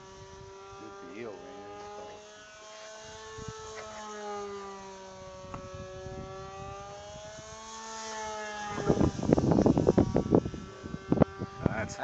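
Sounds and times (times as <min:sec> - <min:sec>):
model plane motor whining: 0:00.0 - 0:12.0.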